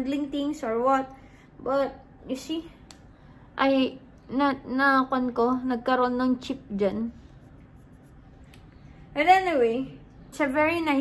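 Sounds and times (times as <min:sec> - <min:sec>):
scratchy rubbing of statue in hand: 0:07.1 - 0:08.4.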